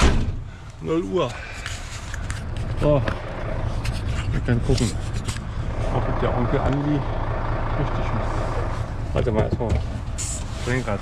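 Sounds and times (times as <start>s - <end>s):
steady low rumble: 0.4s - 11.0s
camera rubbing and clicking: 1.5s - 5.8s.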